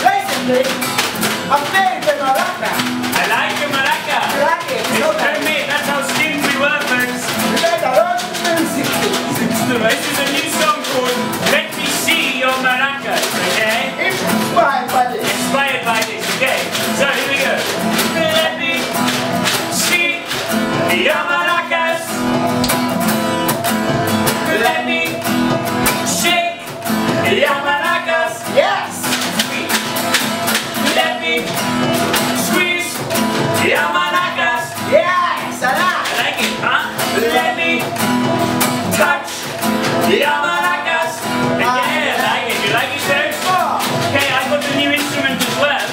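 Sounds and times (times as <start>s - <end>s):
male vocals: 0.0s - 22.6s, 24.1s - 45.9s
acoustic guitar strumming: 0.0s - 45.9s.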